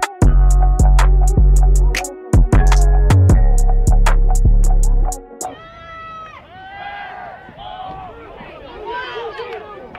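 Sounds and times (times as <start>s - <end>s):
background music with drum beat: 0.0s - 5.5s.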